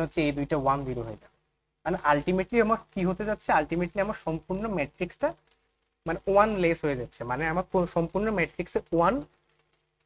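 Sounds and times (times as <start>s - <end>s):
person talking: 0.0s - 5.4s, 6.0s - 9.3s.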